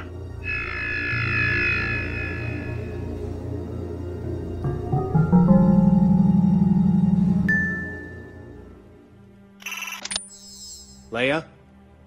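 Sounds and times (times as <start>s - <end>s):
electronic buzzer tone: 0.0s - 3.3s
music: 0.0s - 12.0s.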